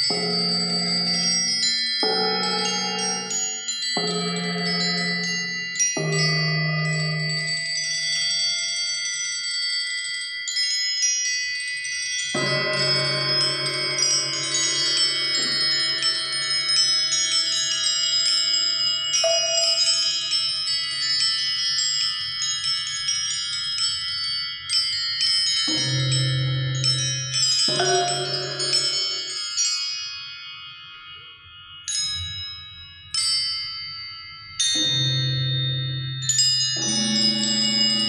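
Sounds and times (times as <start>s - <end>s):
low sustained tone: 12.4s - 17.2s, 25.8s - 29.4s
struck tuned metal discs ringing: 12.4s - 17.8s, 25.7s - 29.5s.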